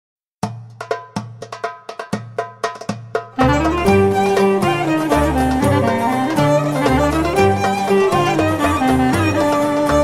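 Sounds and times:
folk percussion rhythm: 0.4 - 10.0.

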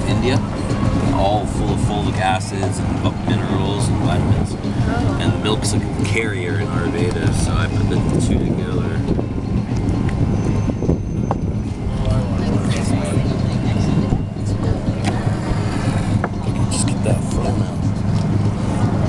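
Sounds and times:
low hum: 0.0 - 19.0.

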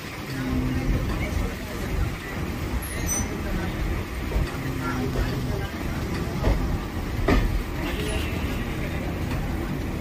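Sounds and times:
train running gear rumbling: 0.0 - 10.0.

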